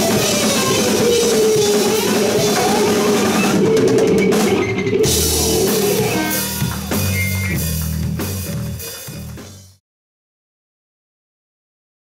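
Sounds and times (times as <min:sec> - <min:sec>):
drum kit with cymbal crashes: 0:00.0 - 0:09.8
held electric guitar note: 0:00.6 - 0:07.4
low bass notes: 0:00.9 - 0:09.8.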